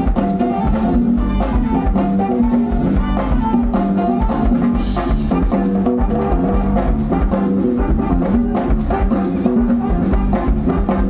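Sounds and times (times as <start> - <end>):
congas and percussion: 0.0 - 11.0
electric bass guitar groove: 0.0 - 11.0.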